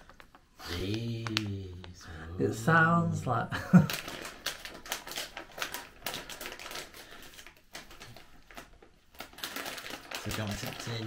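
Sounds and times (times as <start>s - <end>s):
plastic sweet packet crinkling: 0.0s - 2.1s, 3.6s - 11.0s.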